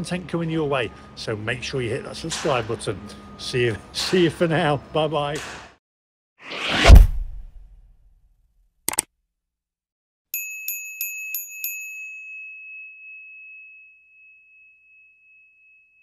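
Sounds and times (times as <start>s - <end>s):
small bell ringing: 10.3s - 16.0s.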